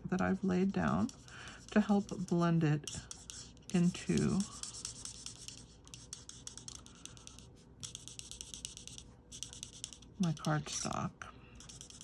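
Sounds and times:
marker scratching over cardstock: 0.6s - 11.0s, 11.6s - 12.0s.

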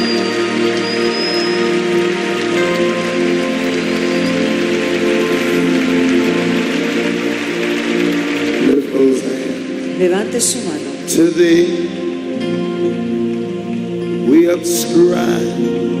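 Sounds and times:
soft keyboard chords: 0.0s - 16.0s.

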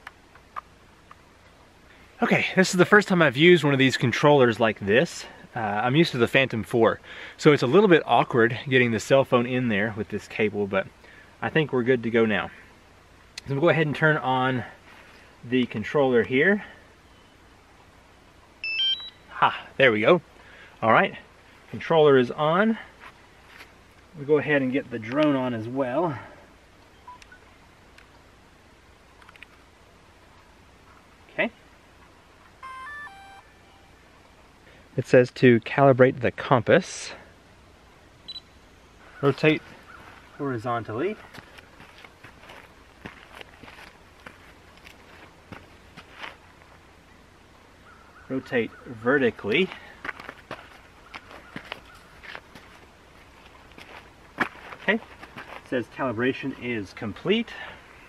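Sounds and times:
faint two-note beep: 18.6s - 19.3s, 32.6s - 34.0s
feet scuffing on gravelly dirt: 23.0s - 23.8s, 41.1s - 46.4s, 49.6s - 55.8s
light clicks: 29.2s - 29.6s.

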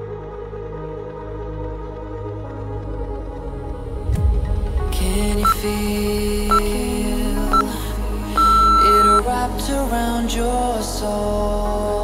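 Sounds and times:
background music: 0.0s - 12.0s
long electronic beep: 8.4s - 9.3s
short electronic beeps: 8.4s - 9.3s.

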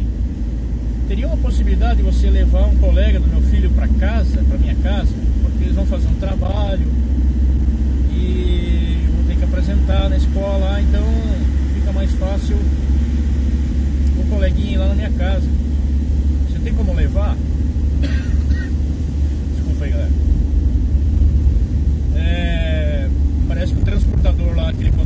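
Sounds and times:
van engine and road noise: 0.0s - 25.0s.

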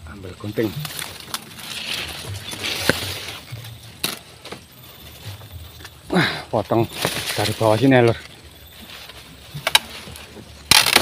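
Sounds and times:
bamboo leaves rustling: 0.0s - 11.0s.

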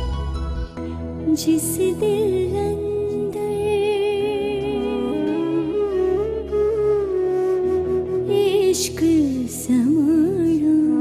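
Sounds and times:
slow instrumental backing: 0.0s - 11.0s.

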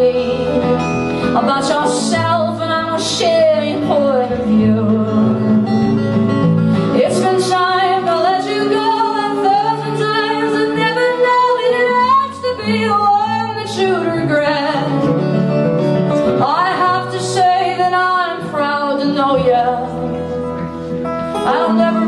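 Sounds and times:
woman singing: 0.0s - 6.0s, 6.8s - 15.3s, 16.2s - 22.0s
acoustic guitars strummed: 0.0s - 22.0s.

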